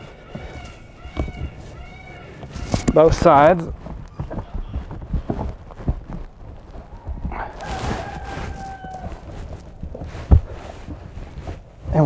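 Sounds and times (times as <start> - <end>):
rubber rubbing and knocking: 0.0 - 12.0.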